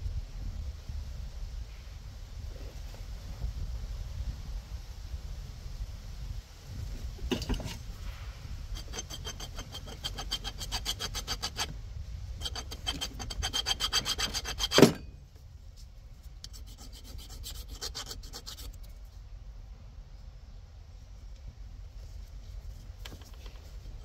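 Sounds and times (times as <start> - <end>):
file scraping metal: 8.7 - 11.7, 12.4 - 15.2, 16.4 - 18.8.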